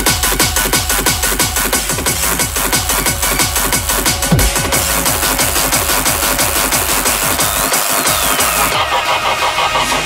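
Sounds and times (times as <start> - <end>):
drum and bass track: 0.0 - 10.0.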